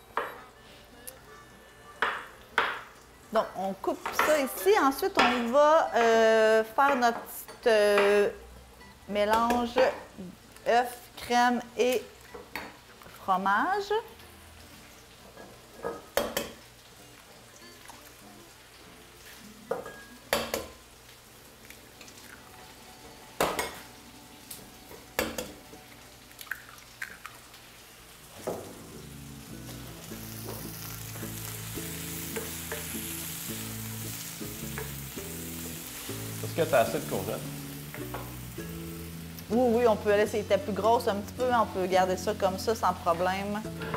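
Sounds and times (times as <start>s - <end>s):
soft background music: 0.0s - 43.9s
onions sizzling in oil: 2.0s - 43.9s.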